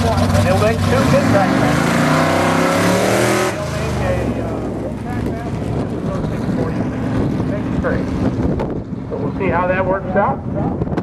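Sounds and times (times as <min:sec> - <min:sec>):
drag car engine revving: 0:00.0 - 0:11.0.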